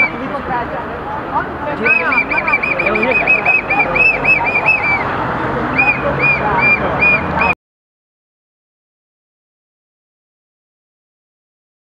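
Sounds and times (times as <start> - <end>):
outdoor crowd noise: 0.0 - 7.6.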